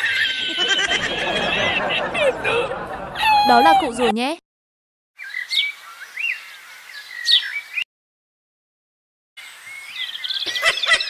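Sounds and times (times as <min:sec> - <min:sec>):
birds chirping: 0:05.2 - 0:07.9, 0:09.4 - 0:11.0.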